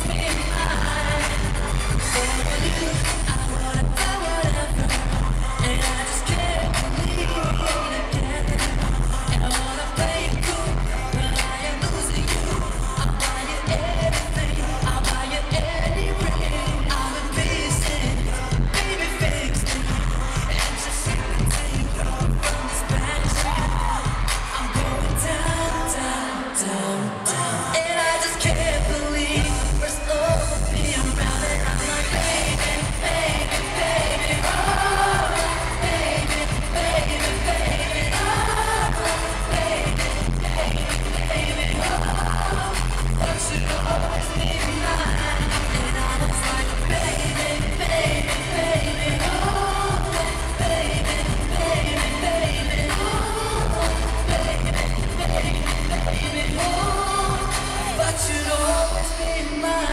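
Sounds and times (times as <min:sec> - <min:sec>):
steady drum beat: 0:00.0 - 0:25.9, 0:28.4 - 0:58.2
man singing into microphone: 0:00.0 - 0:59.9
pop song over sound system: 0:00.0 - 0:59.9.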